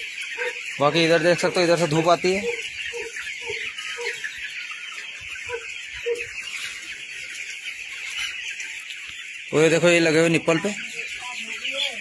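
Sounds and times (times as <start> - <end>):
chicks peeping in chorus: 0.0 - 12.0.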